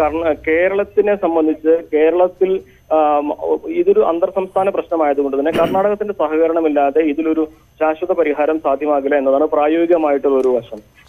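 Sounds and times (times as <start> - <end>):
man speaking over telephone: 0.0 - 10.8.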